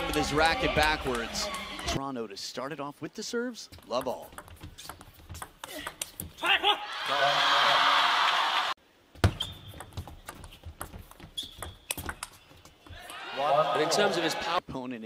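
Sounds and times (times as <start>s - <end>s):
crowd cheering: 0.0s - 2.0s, 6.4s - 8.8s, 12.9s - 14.6s.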